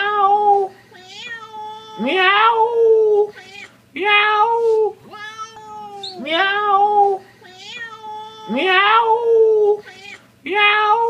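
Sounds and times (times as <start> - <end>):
cat meowing: 1.0 - 2.5, 5.1 - 6.8, 7.5 - 9.0
faint cat call: 5.1 - 6.7.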